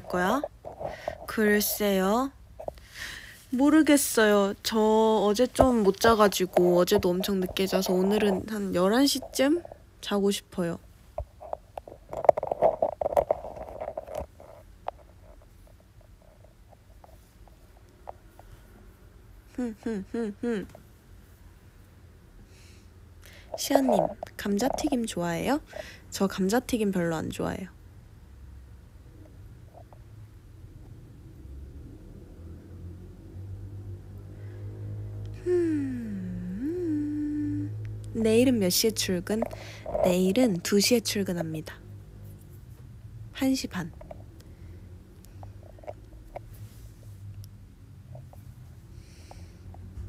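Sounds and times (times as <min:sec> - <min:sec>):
faint low hum: 0:00.0 - 0:50.0
rustling close to microphone: 0:11.0 - 0:18.8
woman humming: 0:19.5 - 0:20.9, 0:35.3 - 0:37.9.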